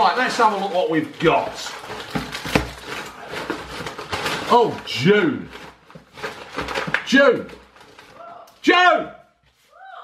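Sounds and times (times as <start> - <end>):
handling rustling: 0.4 - 8.4.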